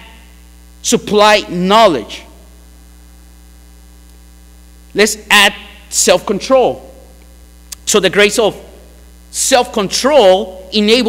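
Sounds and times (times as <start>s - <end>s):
low electrical mains hum: 0.0s - 11.0s
man speaking: 0.8s - 2.4s, 4.9s - 7.0s, 7.7s - 11.0s.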